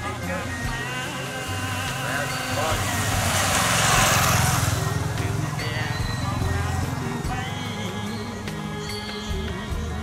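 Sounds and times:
small motorcycle engine passing: 0:00.0 - 0:09.8
voices: 0:00.0 - 0:10.0.

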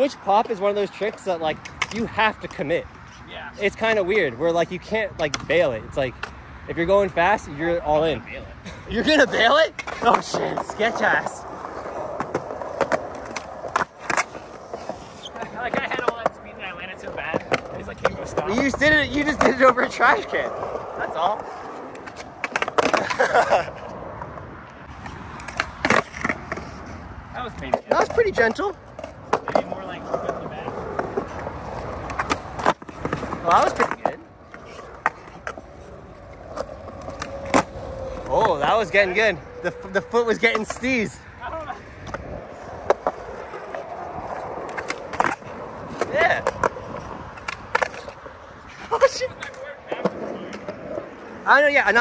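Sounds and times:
skateboard clicks and clack: 0:00.0 - 0:02.8, 0:04.8 - 0:06.4, 0:09.0 - 0:38.8, 0:40.4 - 0:52.0
skateboard wheels rolling on concrete: 0:00.0 - 0:52.0.

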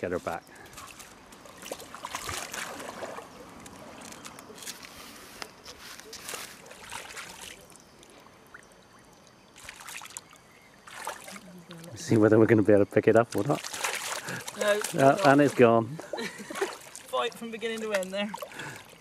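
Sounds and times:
water sloshing and splashing: 0:00.3 - 0:12.2, 0:13.1 - 0:19.0.

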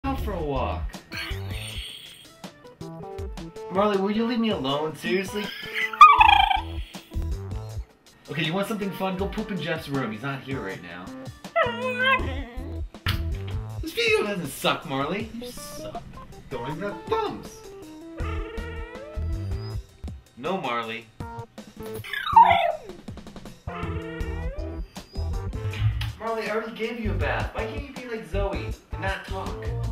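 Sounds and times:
background music: 0:00.0 - 0:29.9
dog whining cry: 0:05.7 - 0:07.0, 0:11.4 - 0:12.8, 0:18.2 - 0:19.8, 0:21.9 - 0:23.1, 0:23.7 - 0:25.4.

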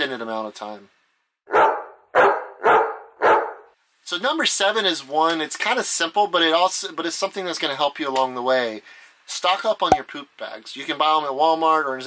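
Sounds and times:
dog barking: 0:01.5 - 0:03.7.

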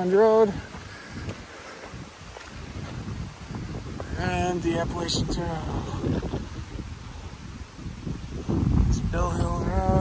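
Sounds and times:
footsteps on gravel: 0:00.0 - 0:04.7
wind buffeting microphone: 0:00.0 - 0:10.0.

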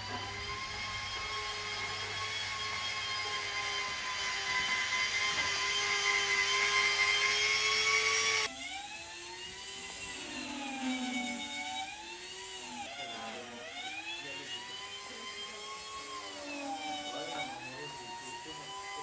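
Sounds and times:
electric grinder whining on ice: 0:00.0 - 0:19.0.

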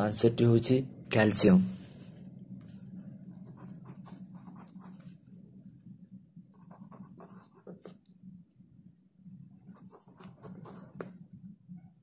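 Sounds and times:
steady low hum: 0:00.0 - 0:12.0
pen scratching on paper: 0:03.4 - 0:05.1, 0:06.5 - 0:08.0, 0:09.7 - 0:11.2.

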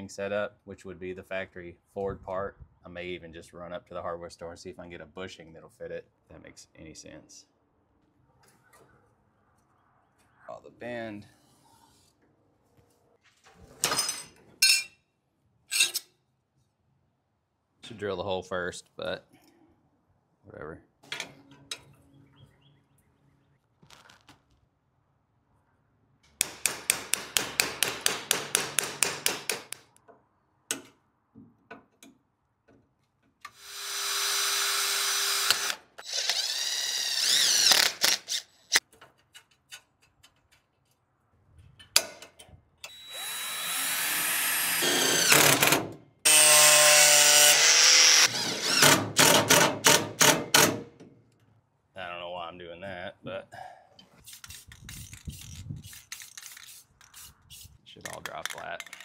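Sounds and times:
impact driver drilling metal: 0:33.5 - 0:38.5, 0:42.9 - 0:50.8.

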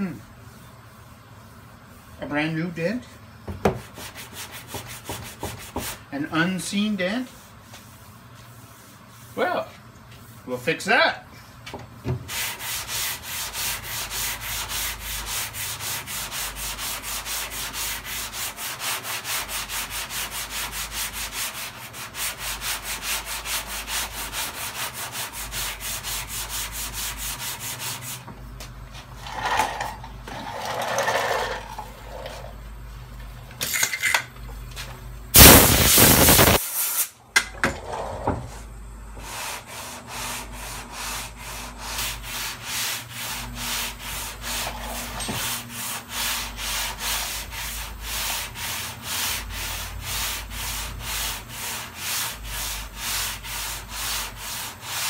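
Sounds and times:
sandpaper rubbing on panel: 0:03.7 - 0:11.0, 0:12.2 - 0:29.9, 0:35.4 - 0:36.7, 0:39.2 - 0:55.0
loud rushing noise: 0:35.4 - 0:36.6.

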